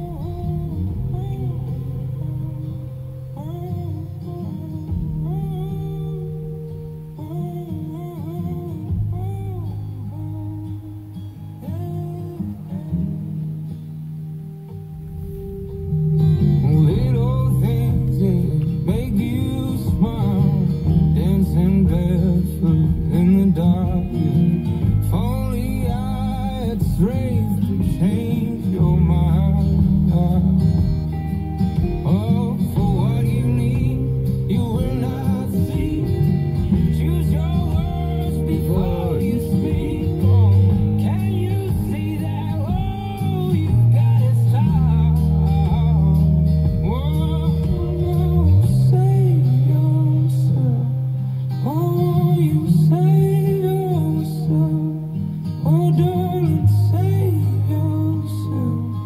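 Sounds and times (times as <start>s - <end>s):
acoustic guitar: 0.0s - 59.0s
person singing: 0.0s - 59.0s.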